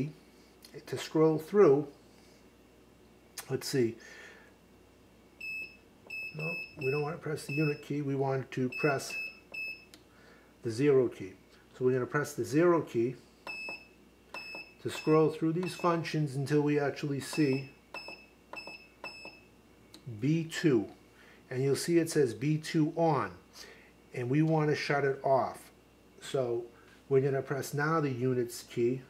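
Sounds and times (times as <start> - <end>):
short high-pitched beep: 5.4 - 7.8.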